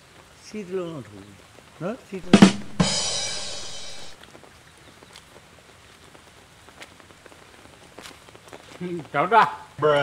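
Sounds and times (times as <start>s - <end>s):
light rain pattering: 0.0s - 2.4s, 4.2s - 10.0s.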